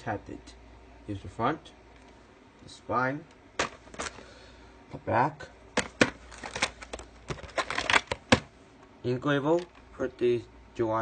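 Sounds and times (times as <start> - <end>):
plastic case clicking and rattling: 3.6 - 4.2, 5.8 - 8.5.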